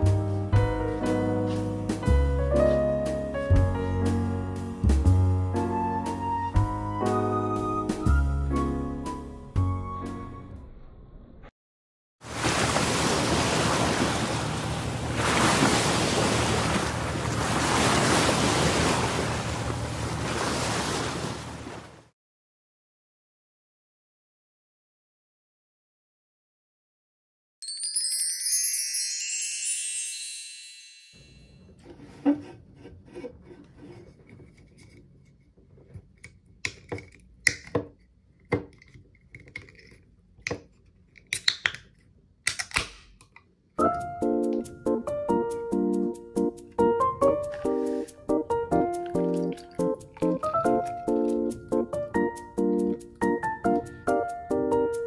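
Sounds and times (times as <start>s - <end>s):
rushing water like surf: 12.2s - 22.1s
can opening: 42.5s - 43.4s.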